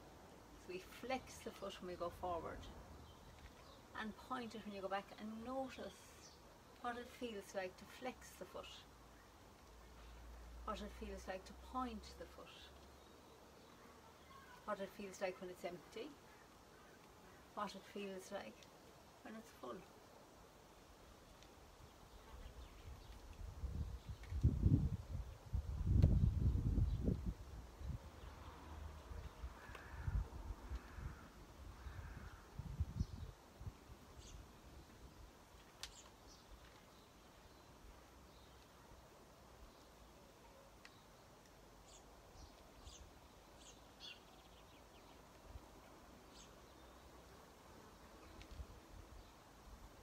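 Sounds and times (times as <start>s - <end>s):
faint high bird chirps: 14.0s - 14.7s
wind buffeting microphone: 23.4s - 28.1s, 29.7s - 33.8s.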